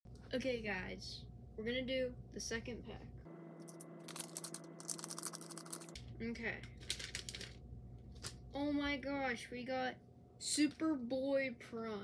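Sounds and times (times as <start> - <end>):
plastic packet crinkling: 4.0 - 6.0, 6.7 - 8.4.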